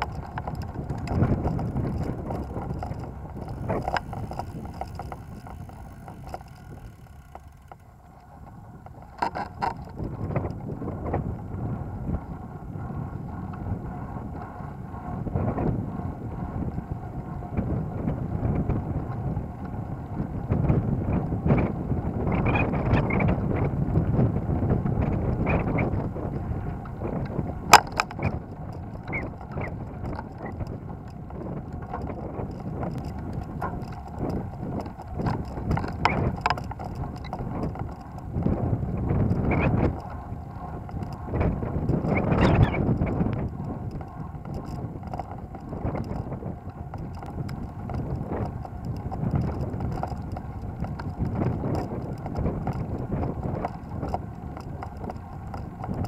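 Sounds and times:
rattles and clicks: 0:00.0 - 0:10.7, 0:26.8 - 0:56.0
rolling road noise: 0:00.0 - 0:56.0
wind on microphone: 0:00.0 - 0:56.0.

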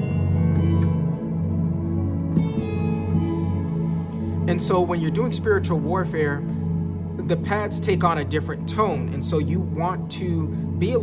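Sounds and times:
electronic keyboard minor chords: 0:00.0 - 0:11.0.

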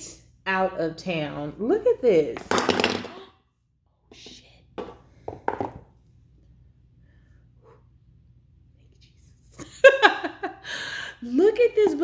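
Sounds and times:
faint low hum: 0:05.8 - 0:12.0
woman laughing: 0:09.6 - 0:11.1.

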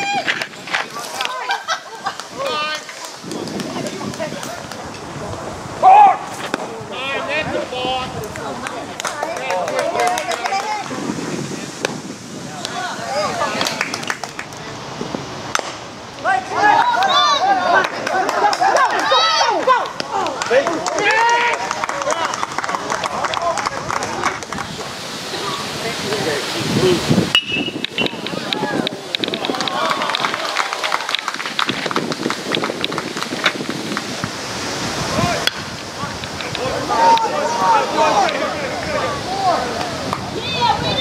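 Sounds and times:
spectators shouting and clapping: 0:00.0 - 0:11.2, 0:11.8 - 0:14.8, 0:15.5 - 0:27.1, 0:27.7 - 0:41.0
baseball bat hitting ball: 0:35.4 - 0:35.7.

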